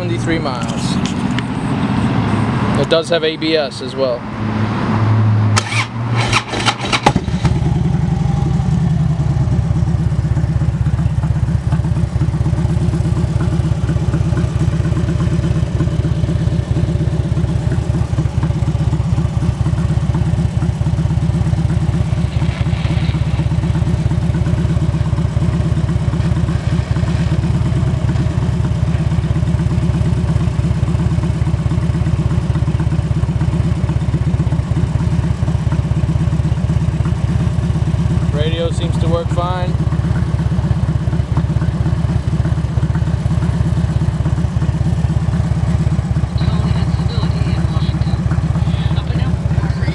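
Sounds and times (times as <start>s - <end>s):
motorcycle engine idling: 0.0s - 2.1s, 5.6s - 49.9s
motorcycle starter cranking: 5.6s - 7.5s.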